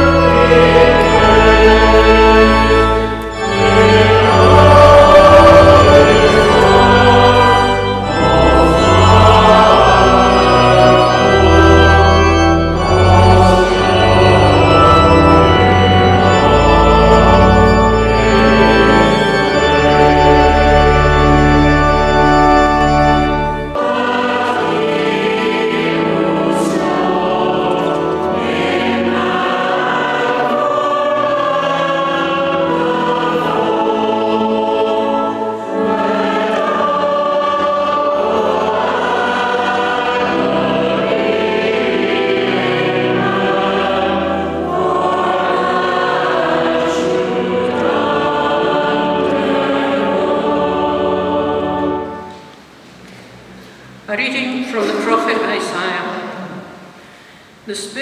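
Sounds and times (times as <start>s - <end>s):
congregation singing a hymn: 0.0s - 52.8s, 53.8s - 58.0s.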